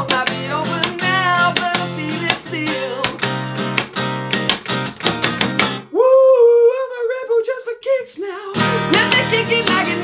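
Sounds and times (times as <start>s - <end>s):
man singing alone: 0.0s - 3.4s, 5.9s - 10.0s.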